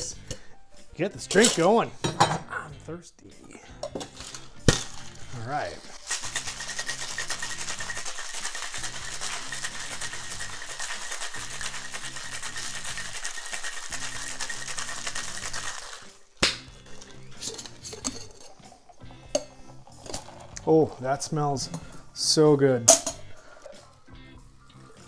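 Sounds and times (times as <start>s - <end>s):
ice rattling in cocktail shaker: 4.0s - 16.2s, 17.0s - 19.0s, 19.8s - 21.0s.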